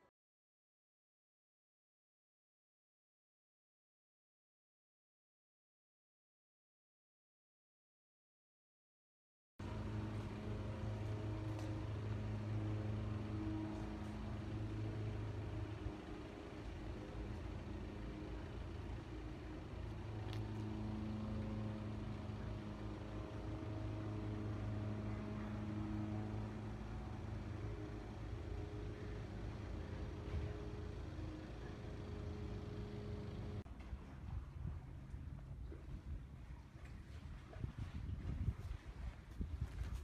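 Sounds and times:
low mechanical hum: 0:09.6 - 0:40.0.

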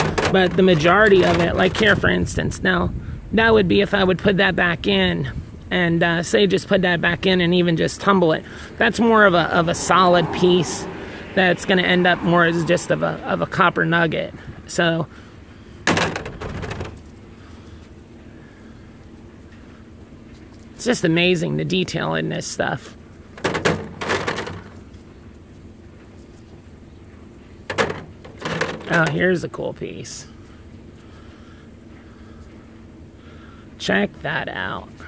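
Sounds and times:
low background hum: 0:00.0 - 0:35.0
outdoor noise: 0:00.0 - 0:35.0.

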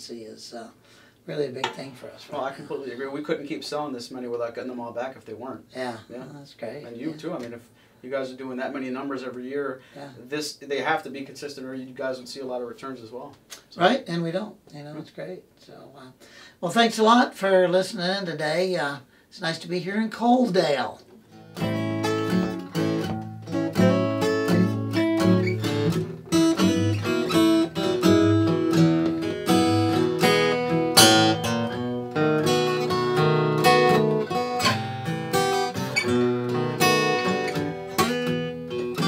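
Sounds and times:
acoustic guitar duet: 0:20.4 - 0:39.0.

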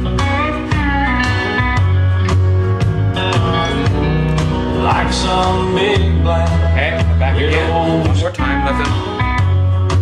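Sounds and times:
country-swing band music: 0:00.0 - 0:10.0
electric guitar lead with bent notes: 0:00.0 - 0:10.0
steady bass line: 0:00.0 - 0:10.0.

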